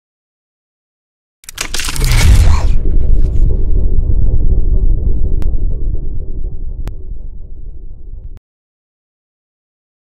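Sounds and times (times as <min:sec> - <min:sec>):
deep bass rumble: 0:01.5 - 0:08.4.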